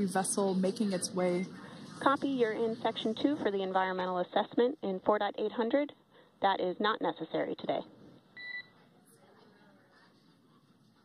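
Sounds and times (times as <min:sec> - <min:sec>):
faint radio hiss: 0:00.0 - 0:11.0
short electronic beep: 0:08.4 - 0:08.7.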